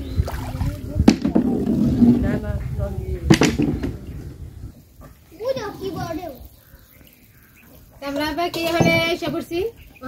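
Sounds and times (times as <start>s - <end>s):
people talking: 5.3s - 6.6s, 8.0s - 9.8s.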